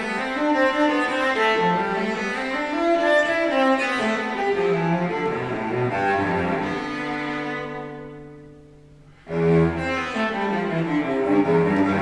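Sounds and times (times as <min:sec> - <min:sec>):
bowed cello melody: 0:00.0 - 0:12.0.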